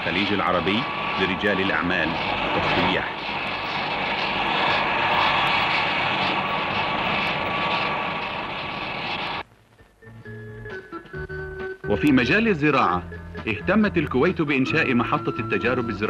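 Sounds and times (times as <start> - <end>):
jet engines running: 0.0 - 16.0.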